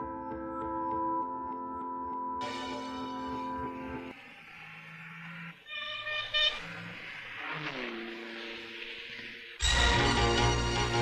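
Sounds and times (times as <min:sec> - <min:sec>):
vehicle horn toots: 0:05.7 - 0:06.7.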